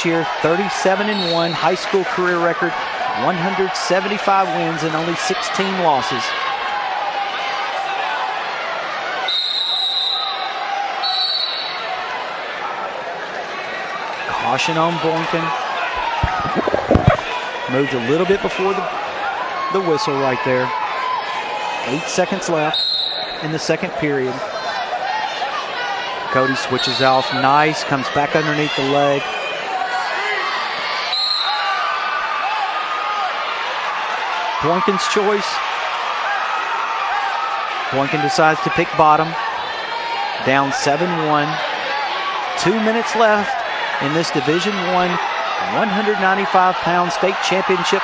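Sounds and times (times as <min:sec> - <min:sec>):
murmur of arena crowd: 0:00.0 - 0:48.0
referee's whistle blasts: 0:01.0 - 0:01.6, 0:09.3 - 0:11.8, 0:22.7 - 0:23.4, 0:31.1 - 0:31.7.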